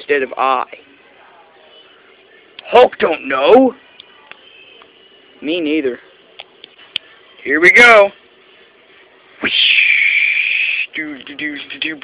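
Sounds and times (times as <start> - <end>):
high-pitched vocal screech: 9.4 - 11.0.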